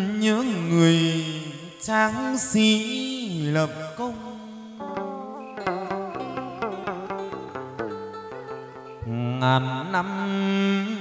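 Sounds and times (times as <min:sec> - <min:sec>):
man singing long held note: 0:00.0 - 0:11.0.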